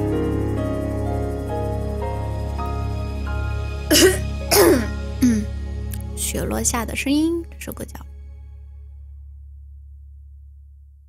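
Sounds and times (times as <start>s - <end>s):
soft instrumental music: 0.0s - 9.3s
woman coughing: 3.9s - 5.5s.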